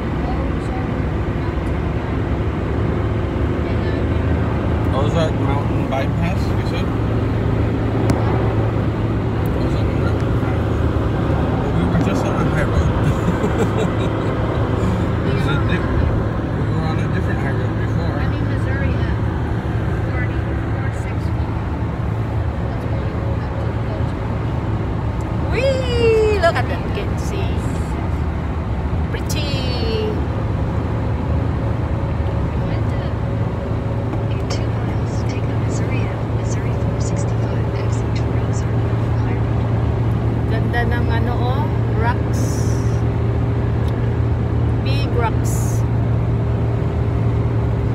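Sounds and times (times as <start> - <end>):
car road and engine noise: 0.0 - 47.9.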